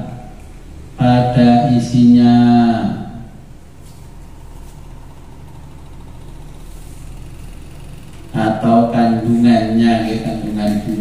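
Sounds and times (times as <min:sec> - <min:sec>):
low steady hum: 0:00.0 - 0:11.0
man chanting recitation: 0:01.0 - 0:03.3, 0:08.3 - 0:11.0.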